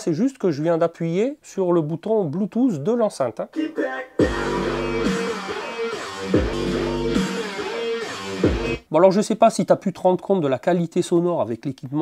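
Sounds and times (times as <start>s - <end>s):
guitar music with bass line: 4.2s - 8.8s.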